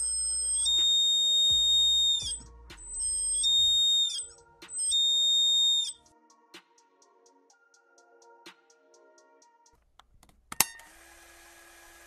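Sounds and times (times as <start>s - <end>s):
high steady buzzer beeps: 0.0s - 4.2s.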